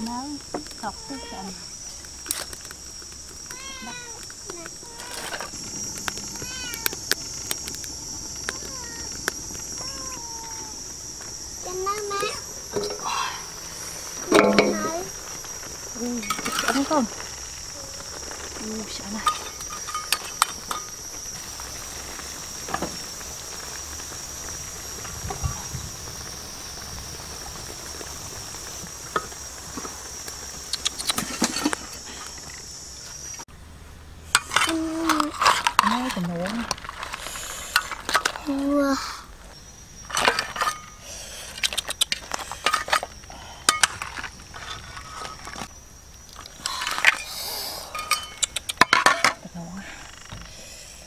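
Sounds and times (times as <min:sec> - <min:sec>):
high-pitched hiss: 0:00.0 - 0:51.0.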